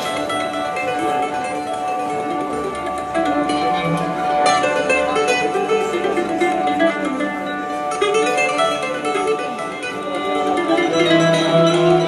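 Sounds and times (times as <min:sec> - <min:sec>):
bowed violins: 0:00.0 - 0:12.0
plucked ouds and qanun: 0:00.0 - 0:12.0.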